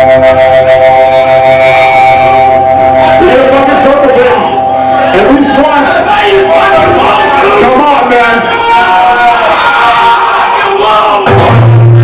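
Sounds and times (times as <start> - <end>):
distorted guitars droning chord: 0.0 - 8.7, 11.2 - 12.0.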